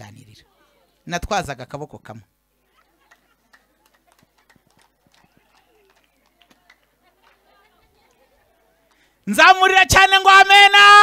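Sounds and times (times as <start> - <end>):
faint background voices: 2.5 - 9.2.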